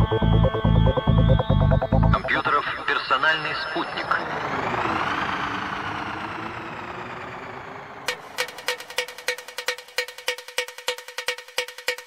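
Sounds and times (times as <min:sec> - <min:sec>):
wide synth pad: 0:00.0 - 0:10.3
synthesizer sweep rising: 0:00.0 - 0:11.8
processed voice sample: 0:02.1 - 0:05.7.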